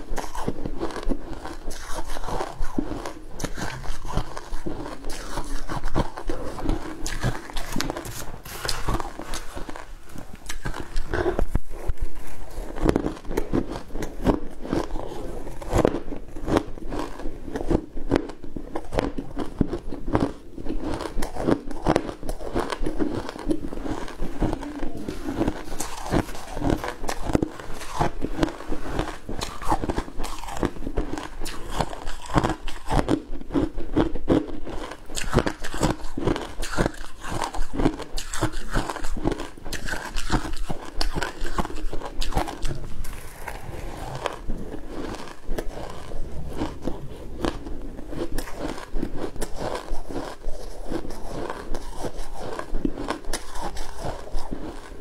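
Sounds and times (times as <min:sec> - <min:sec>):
chewing crunchy shaved ice: 0:00.0 - 0:55.0.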